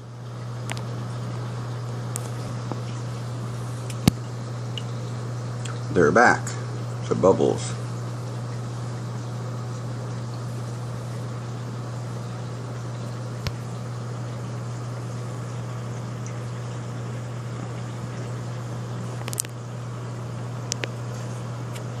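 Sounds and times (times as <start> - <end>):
aquarium pump hum: 0.0 - 22.0
circulating water wash: 0.0 - 22.0.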